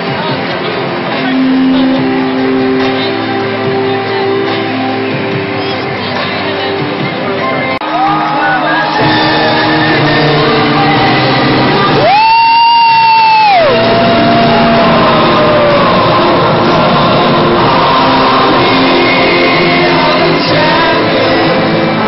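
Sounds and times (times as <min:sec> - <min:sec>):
loud music with singing: 0:00.0 - 0:22.0
people shouting and whooping: 0:07.8 - 0:18.3.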